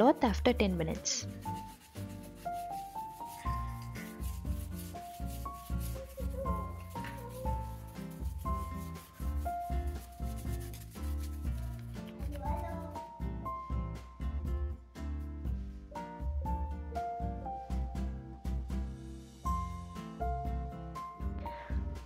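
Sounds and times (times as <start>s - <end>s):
toothbrush scrubbing tile: 1.1s - 12.9s.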